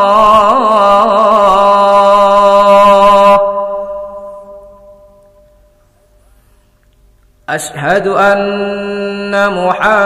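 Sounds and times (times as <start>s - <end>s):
call to prayer held note echoing: 0.0s - 5.8s.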